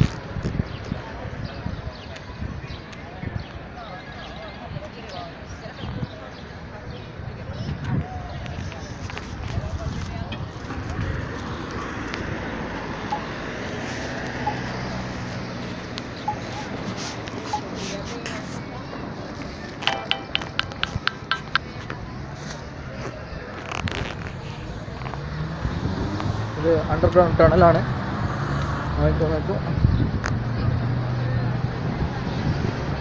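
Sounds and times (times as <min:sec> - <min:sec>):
people's voices: 0:00.8 - 0:25.6
traffic hum: 0:06.6 - 0:33.0
sharp ticks: 0:19.8 - 0:21.7.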